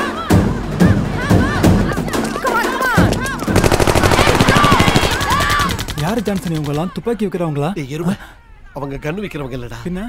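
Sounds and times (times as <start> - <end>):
rapid automatic gunfire: 3.3 - 6.8.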